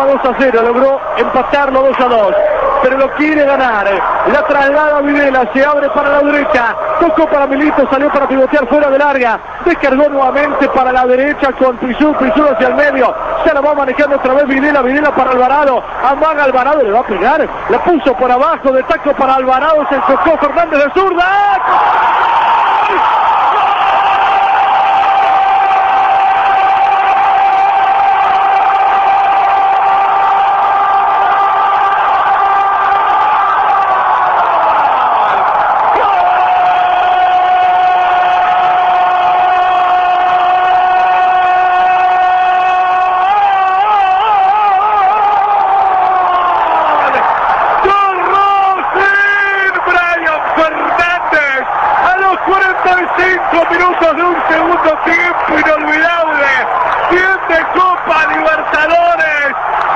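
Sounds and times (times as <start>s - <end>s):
excited shouting: 0.0s - 59.9s.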